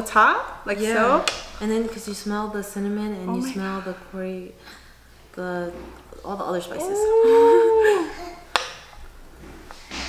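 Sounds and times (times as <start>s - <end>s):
woman saying ooh: 6.7s - 8.2s.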